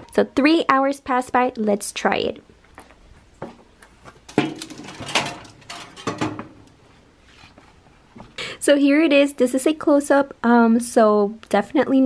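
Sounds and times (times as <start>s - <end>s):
metal baking tray scraping rack: 4.3s - 6.7s.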